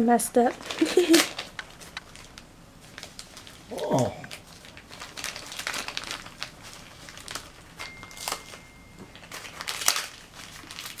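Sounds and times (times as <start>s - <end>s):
plastic wrapper crackling: 0.4s - 11.0s.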